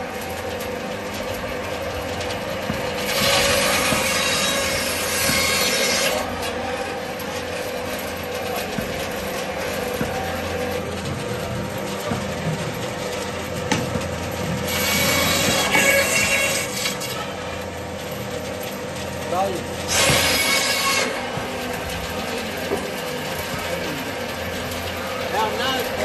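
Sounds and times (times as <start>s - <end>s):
bandsaw motor hum: 0.0s - 26.0s.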